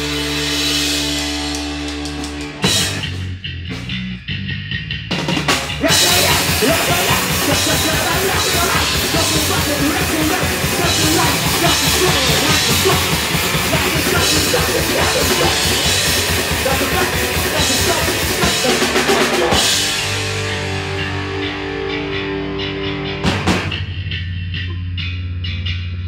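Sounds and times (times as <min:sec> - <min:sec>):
punk band playing live: 0:00.0 - 0:04.1, 0:05.0 - 0:24.6
sustained ringing guitar notes: 0:19.5 - 0:26.0.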